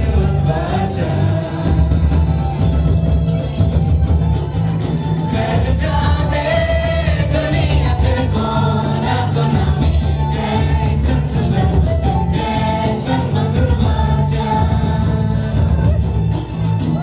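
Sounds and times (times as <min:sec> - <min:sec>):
group of voices singing: 0:00.0 - 0:02.6, 0:05.3 - 0:16.1
worship band music: 0:00.0 - 0:17.0.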